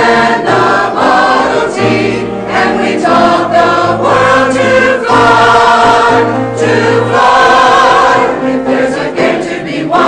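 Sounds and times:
mixed choir singing chords: 0:00.0 - 0:10.0.

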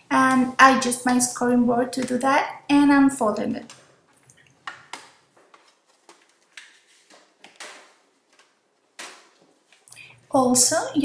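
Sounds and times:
cardstock rustling and tapping: 0:04.6 - 0:09.8.

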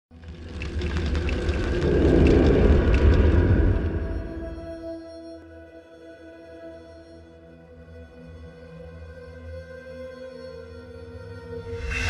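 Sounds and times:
deep rumbling: 0:00.1 - 0:04.8.

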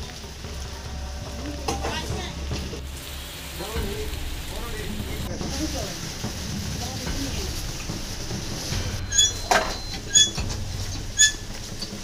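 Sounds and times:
hissing outdoor noise: 0:00.0 - 0:12.0.

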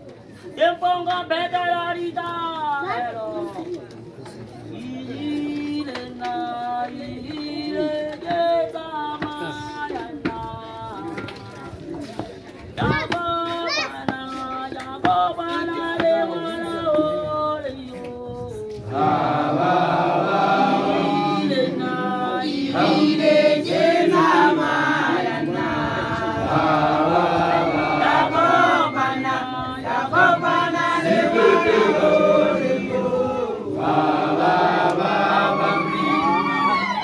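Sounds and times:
group chanting and singing: 0:04.7 - 0:12.2, 0:12.8 - 0:37.0.

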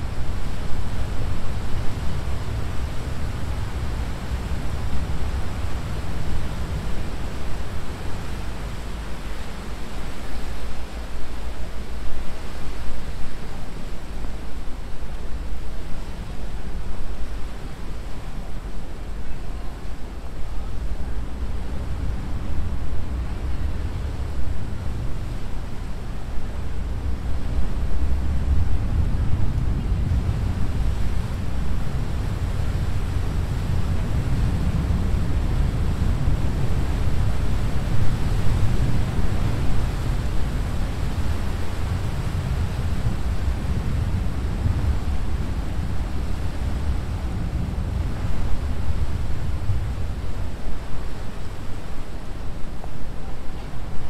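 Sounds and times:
wind on microphone: 0:00.0 - 0:54.0
propellers churning water: 0:21.2 - 0:51.7.

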